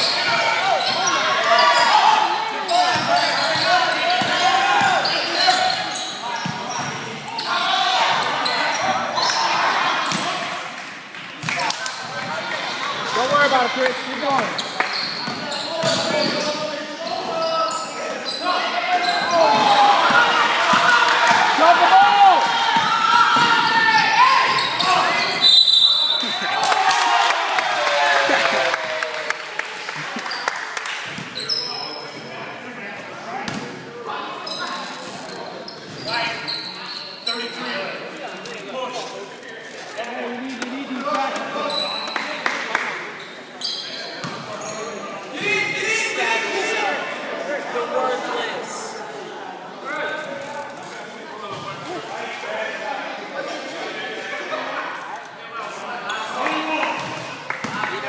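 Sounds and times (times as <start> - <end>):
sneakers squeaking: 0.0 - 10.5, 12.0 - 21.4, 22.7 - 26.5, 30.2 - 32.3, 33.4 - 37.9, 39.8 - 42.3, 43.1 - 45.8.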